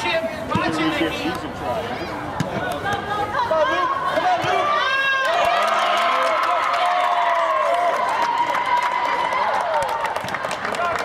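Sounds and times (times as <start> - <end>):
crowd cheering: 3.6 - 11.0.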